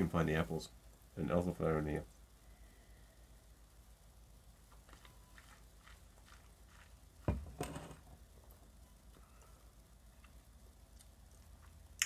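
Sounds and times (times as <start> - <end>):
glass set down thud: 7.3 - 8.0.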